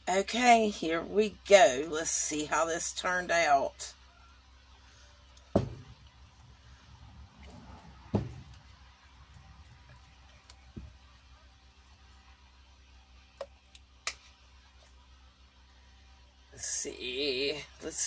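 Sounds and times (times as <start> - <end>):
thumps: 5.5 - 6.5, 7.4 - 11.0
light knocks: 7.4 - 8.7.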